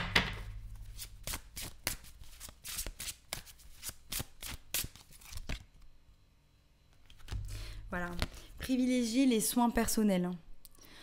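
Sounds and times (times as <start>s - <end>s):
cards being shuffled by hand: 0.8s - 5.7s.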